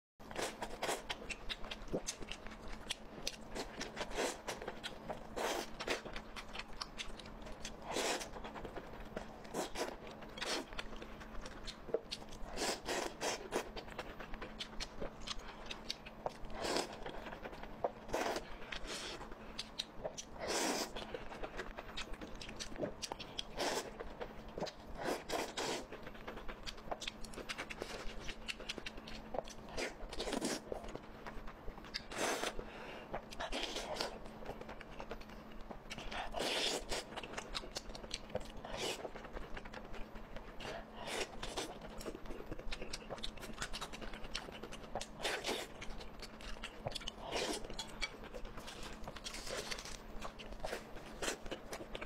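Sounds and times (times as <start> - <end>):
chewing and crunching food: 0.2 - 52.0.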